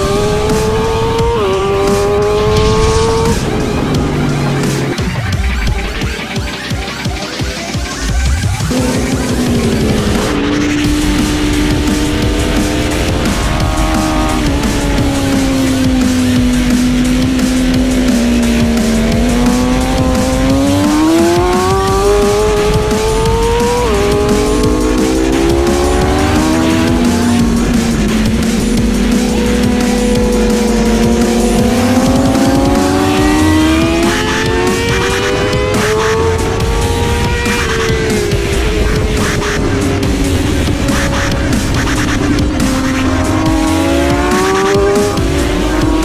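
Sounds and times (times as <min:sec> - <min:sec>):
background music: 0:00.0 - 0:46.0
motorcycle engine revving: 0:00.0 - 0:46.0.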